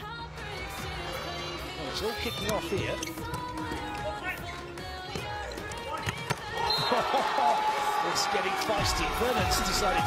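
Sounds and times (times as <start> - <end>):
background music: 0.0 - 10.0
players' voices: 0.7 - 10.0.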